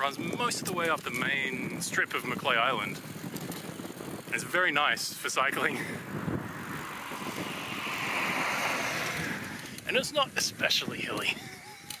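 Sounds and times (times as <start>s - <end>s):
car passing on road: 5.5s - 10.0s.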